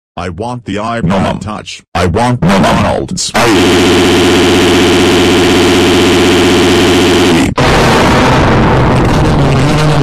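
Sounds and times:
distorted cartoon crying: 0:07.3 - 0:10.0.

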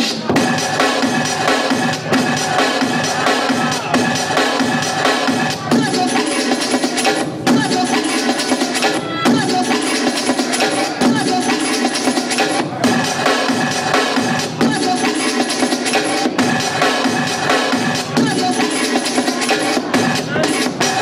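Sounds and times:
drum-led music from vinyl record: 0:00.0 - 0:21.0.

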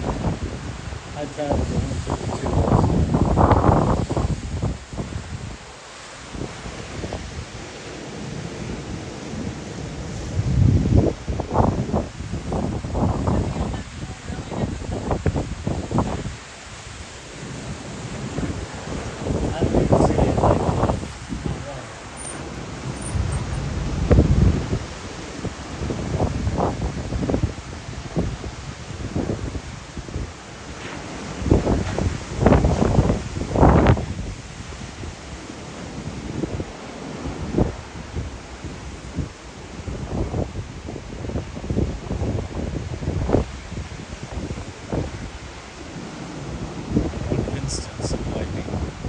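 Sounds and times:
surf hissing: 0:00.0 - 0:49.0
wind buffeting microphone: 0:00.0 - 0:49.0.

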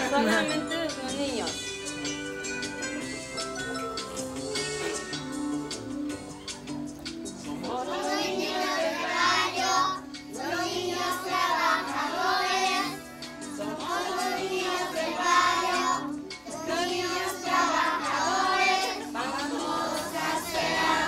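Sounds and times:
young children singing: 0:07.5 - 0:21.0.

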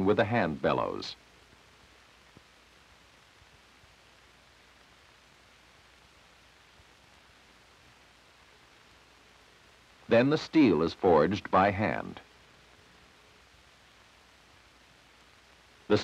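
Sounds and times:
faint steady hiss: 0:00.0 - 0:16.0.

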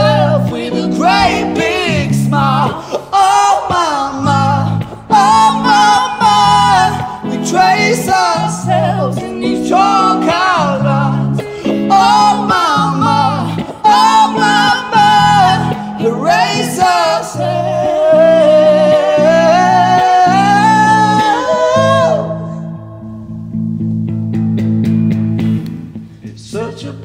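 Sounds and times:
man and woman singing a duet: 0:00.0 - 0:22.8
guitar chords: 0:00.0 - 0:26.3.

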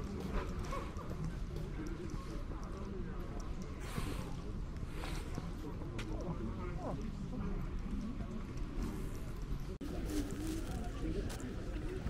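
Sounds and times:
faint voices: 0:00.0 - 0:12.0
street ambience: 0:00.0 - 0:12.0.

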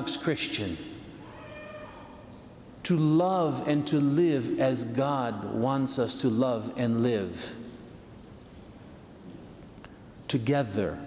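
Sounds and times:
man preaching: 0:00.0 - 0:01.0, 0:02.8 - 0:07.6, 0:10.3 - 0:11.0
hum of echoing hall: 0:00.0 - 0:11.0.

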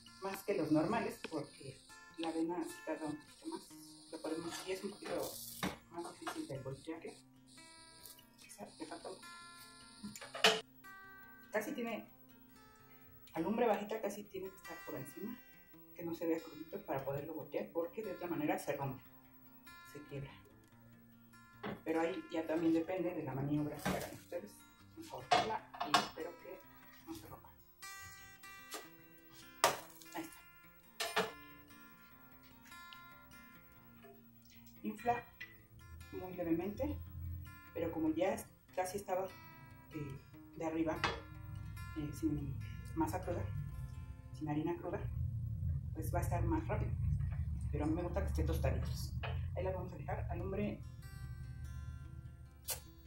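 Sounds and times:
acoustic guitar music: 0:00.0 - 0:53.0.

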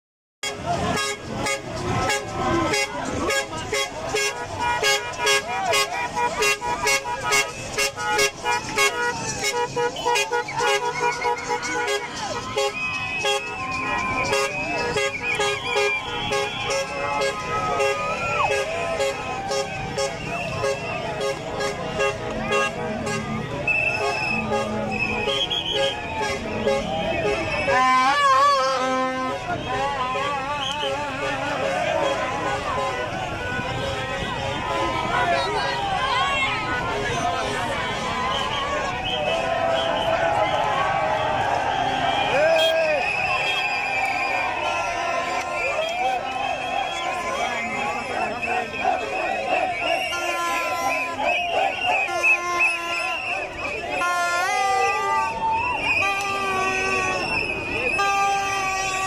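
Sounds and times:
crowd shouting: 0:00.4 - 0:59.0
horns tooting: 0:00.4 - 0:59.0.

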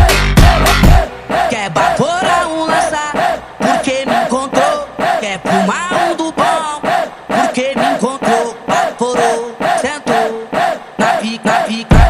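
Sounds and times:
rhythmic dance beat: 0:00.0 - 0:02.9, 0:07.3 - 0:12.0
chopped chanted vocal samples: 0:00.0 - 0:12.0.

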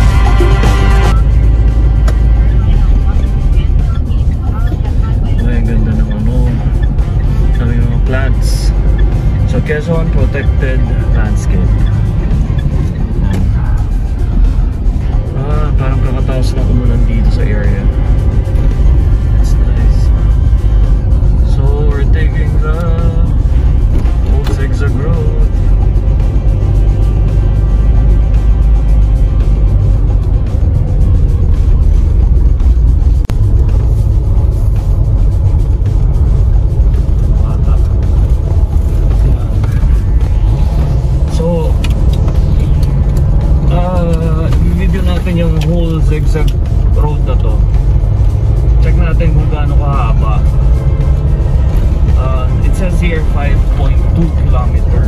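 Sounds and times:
car engine rumble: 0:00.0 - 0:55.0
tyres on road: 0:00.0 - 0:55.0.

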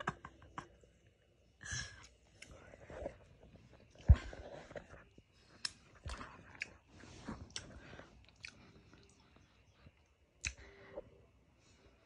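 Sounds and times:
faint chewing: 0:01.8 - 0:11.0.

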